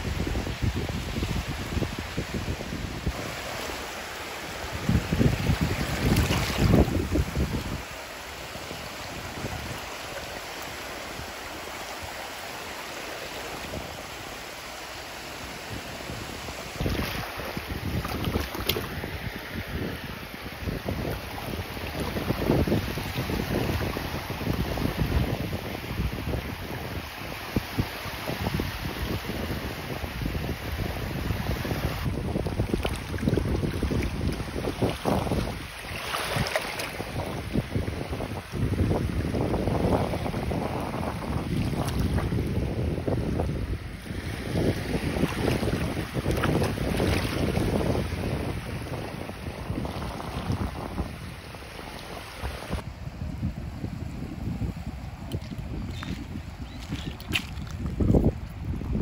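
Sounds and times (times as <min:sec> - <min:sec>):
wind buffeting microphone: 0:00.0 - 0:12.3, 0:15.3 - 0:59.0
small waves lapping: 0:02.9 - 0:25.9, 0:32.0 - 0:52.8, 0:55.1 - 0:59.0.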